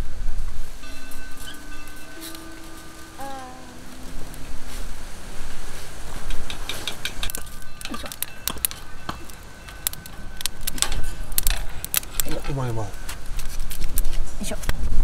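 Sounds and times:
wood fire crackling: 0.0 - 14.8
person speaking: 3.2 - 4.5.

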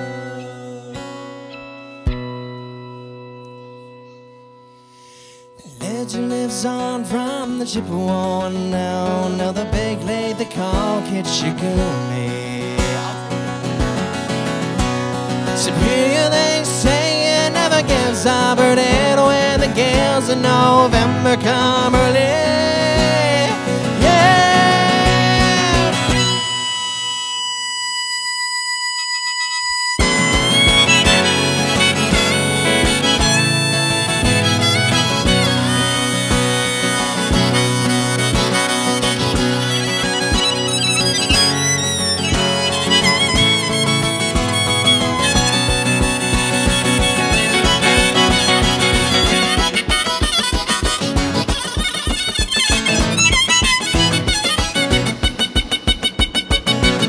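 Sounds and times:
harmonica: 0.0 - 2.6, 9.0 - 57.0
acoustic guitar strumming: 0.0 - 57.0
electric guitar: 0.0 - 57.0.

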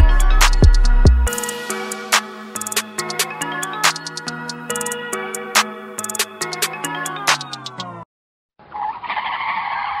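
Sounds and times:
music: 0.0 - 8.1.

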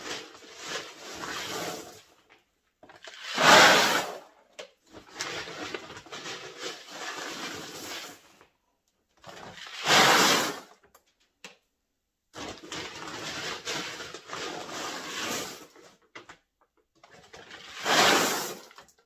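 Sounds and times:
dry goods pouring into a bag: 17.4 - 18.8.

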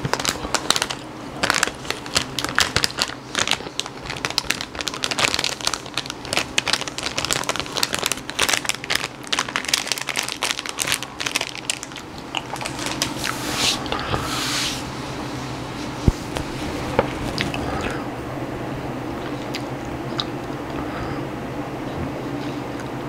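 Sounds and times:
plastic bag crinkling: 0.0 - 14.1, 16.2 - 18.0
chips crunching: 0.0 - 14.2.

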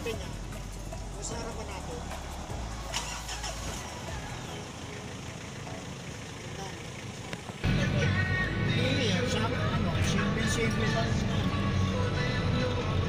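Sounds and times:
background music: 0.0 - 6.0, 7.6 - 13.0
vehicle engine and road rumble: 0.0 - 13.0.

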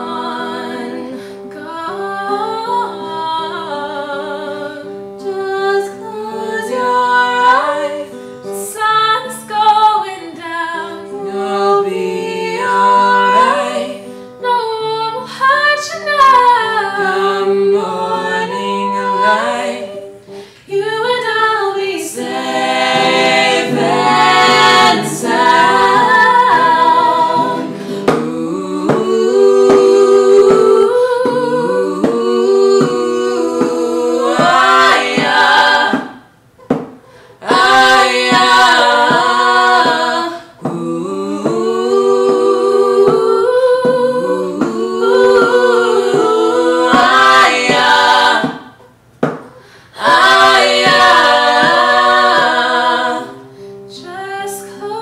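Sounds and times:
people singing in harmony: 0.0 - 36.4, 37.1 - 49.0, 49.6 - 55.0
acoustic guitar: 0.0 - 55.0.

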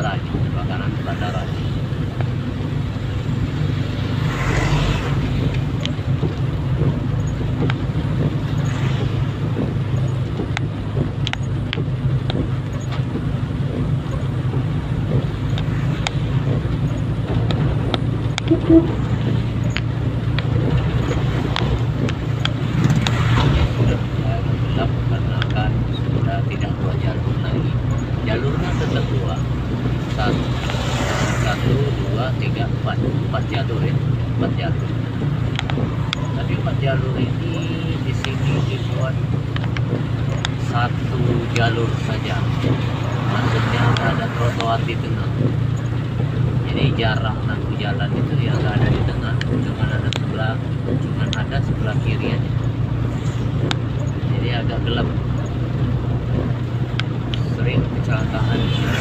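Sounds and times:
tyres on wet road: 0.0 - 59.0
vehicle engine drone: 0.0 - 59.0
sharp ticks: 4.9 - 24.2, 32.4 - 59.0.

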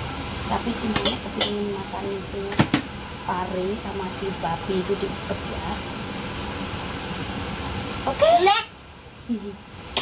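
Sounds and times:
fan running: 0.0 - 10.0.

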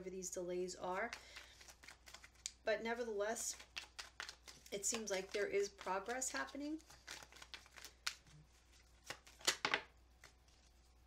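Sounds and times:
cards being shuffled: 1.0 - 2.6, 3.4 - 10.8.

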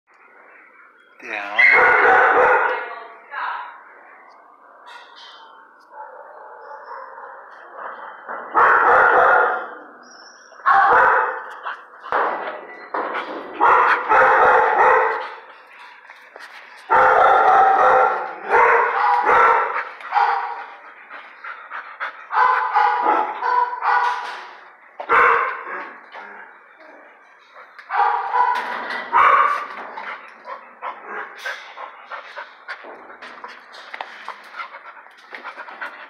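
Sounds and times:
dog barking in tiled kennel: 1.6 - 2.9, 5.3 - 15.6, 16.8 - 20.8, 22.2 - 33.0.

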